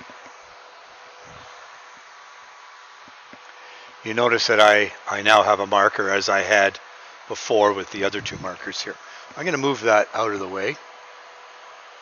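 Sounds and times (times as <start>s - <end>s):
faint steady hum: 0.0s - 12.0s
steady hiss: 0.0s - 12.0s.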